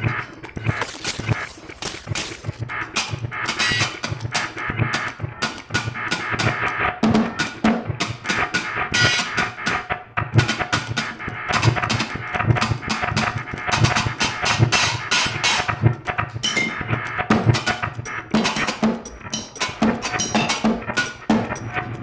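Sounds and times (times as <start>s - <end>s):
processed electronic sounds: 0.0s - 22.0s.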